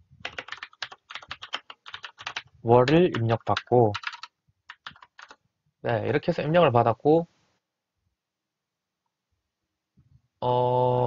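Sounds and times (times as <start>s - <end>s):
fast typing on keyboard: 0.2s - 5.4s.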